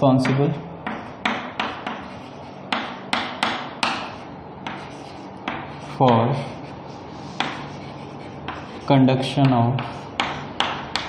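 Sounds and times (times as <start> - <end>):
chalk tapping on chalkboard: 0.2 - 11.0
chalk scratching: 1.0 - 11.0.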